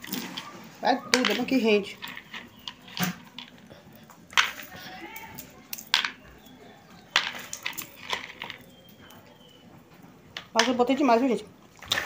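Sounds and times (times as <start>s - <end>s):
peanuts rattling in plastic bowl: 0.0s - 9.0s.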